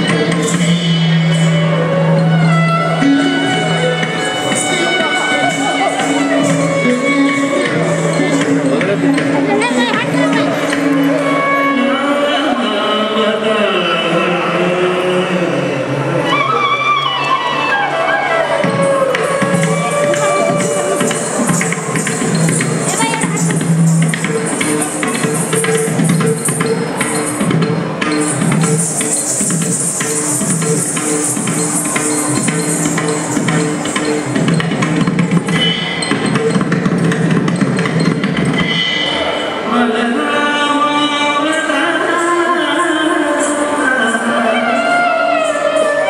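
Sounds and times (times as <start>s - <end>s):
sharp percussive strikes: 0.0s - 11.7s, 18.5s - 39.6s
gliding melodic instrument: 0.0s - 13.0s, 16.2s - 39.6s.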